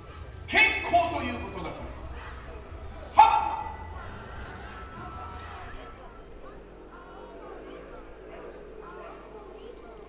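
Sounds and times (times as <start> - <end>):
low background murmur: 0.0 - 10.0
dog bark: 3.2 - 4.0.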